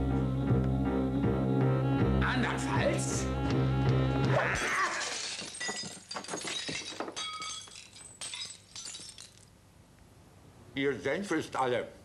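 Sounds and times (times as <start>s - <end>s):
objects breaking: 4.4s - 9.5s
glass shattering: 4.5s - 9.6s.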